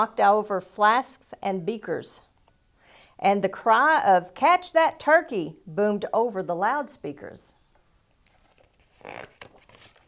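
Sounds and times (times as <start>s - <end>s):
book page turning: 8.2s - 10.0s.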